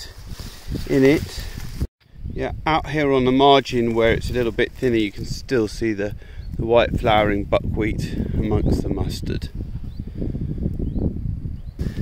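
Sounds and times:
rustling through dense crop: 0.0 - 1.9, 2.9 - 7.2.

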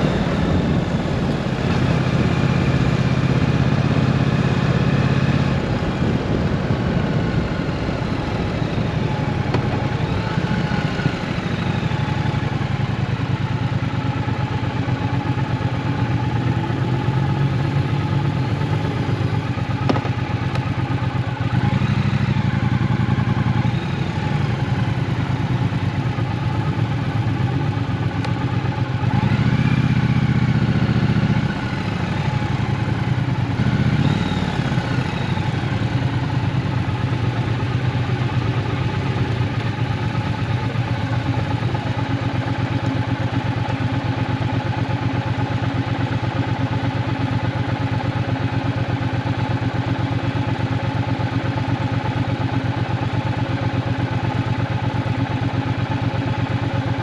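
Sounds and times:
motorcycle engine idling and revving: 0.0 - 57.0.

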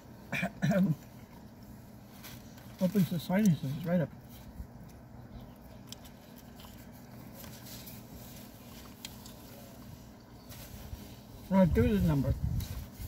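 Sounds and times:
low hum inside a car: 0.0 - 13.0
person chewing: 4.7 - 9.9.

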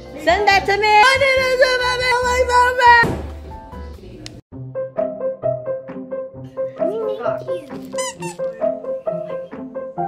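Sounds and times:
light repeating background music: 0.0 - 10.0
squeaky dog toy squeaking: 7.9 - 8.6.

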